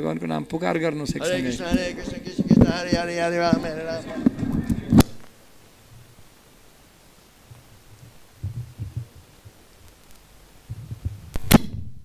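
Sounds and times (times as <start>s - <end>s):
microphone handling thumps: 1.1s - 5.3s, 8.4s - 9.3s.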